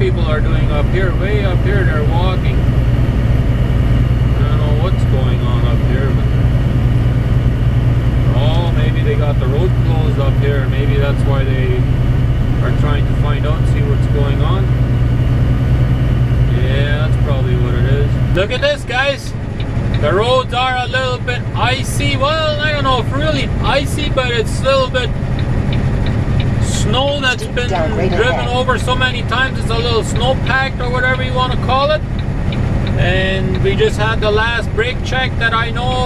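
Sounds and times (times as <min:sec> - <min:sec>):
voices talking: 0:00.0 - 0:02.8, 0:04.2 - 0:06.4, 0:08.2 - 0:14.8, 0:16.4 - 0:36.0
truck engine and tyres drone: 0:00.0 - 0:36.0.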